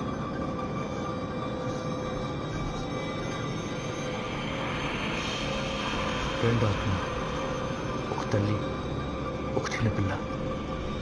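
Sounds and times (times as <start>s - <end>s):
eerie noisy drone: 0.0s - 11.0s.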